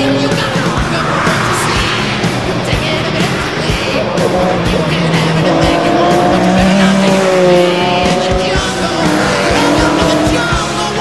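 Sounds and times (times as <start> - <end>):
background music with steady beat: 0.0 - 11.0
racing car engines passing: 0.0 - 11.0.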